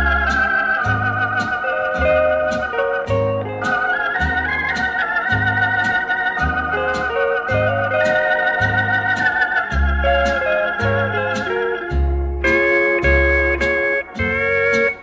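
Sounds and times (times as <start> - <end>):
bass line: 0.0 - 15.0
light steady beat: 0.0 - 15.0
organ melody: 0.0 - 15.0
steel guitar: 0.0 - 15.0.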